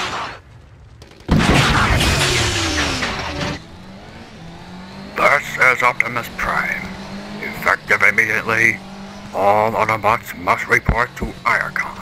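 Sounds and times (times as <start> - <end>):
car engine revving: 1.4 - 12.0
low engine hum: 2.0 - 12.0.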